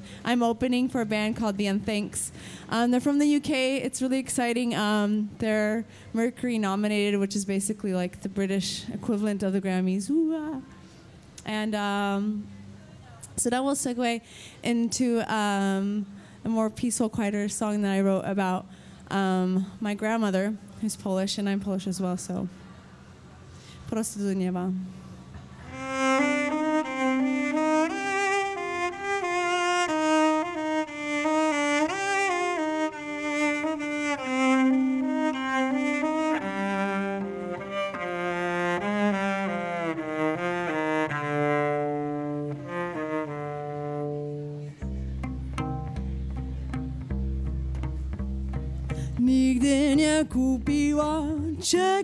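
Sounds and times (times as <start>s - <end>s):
bowed cello melody: 25.3s - 52.0s.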